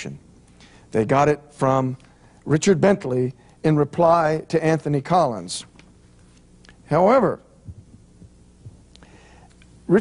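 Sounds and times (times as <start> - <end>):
low electrical hum: 0.0 - 10.0
man speaking: 0.9 - 5.7, 6.9 - 7.5.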